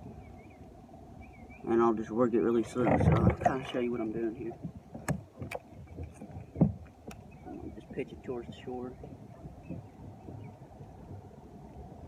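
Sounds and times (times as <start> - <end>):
low thump on kayak: 4.6 - 6.9
light clicks on kayak: 4.9 - 7.4.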